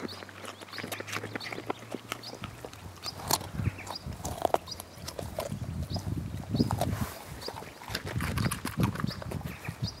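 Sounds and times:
dog crunching a carrot: 0.0s - 10.0s.

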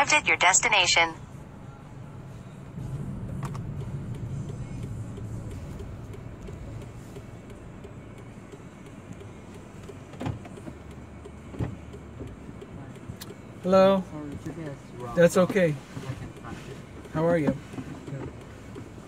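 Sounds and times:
engine and road hum: 0.0s - 19.0s.

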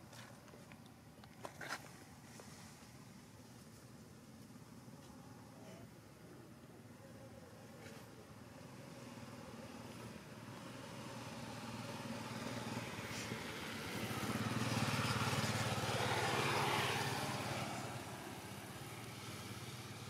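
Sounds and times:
motor vehicle passing by: 7.8s - 20.0s.

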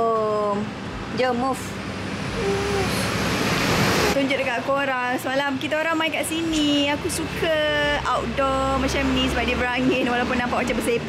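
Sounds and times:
vehicle rushing past: 0.7s - 4.7s.

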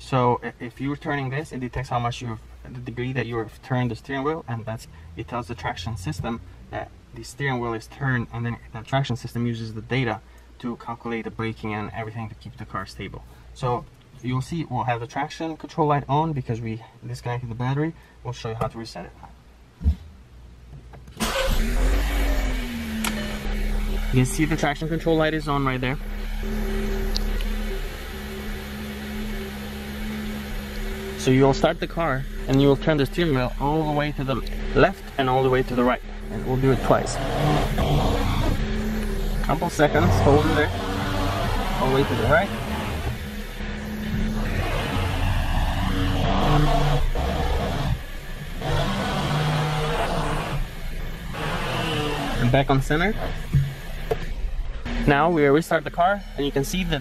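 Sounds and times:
low cabin hum: 19.4s - 57.0s
car engine idling: 21.2s - 57.0s
faint sustained tones: 23.1s - 47.2s.

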